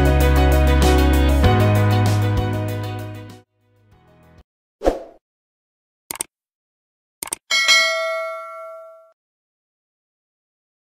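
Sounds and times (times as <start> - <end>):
bell ding: 7.5 - 9.2.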